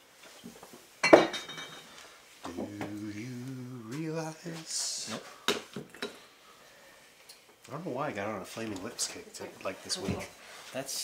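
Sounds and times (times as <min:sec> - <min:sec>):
bar glassware clinking: 0:01.0 - 0:01.9.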